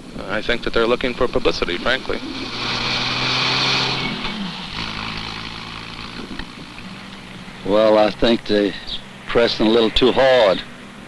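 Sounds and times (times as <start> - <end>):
car driving past: 1.3 - 7.7.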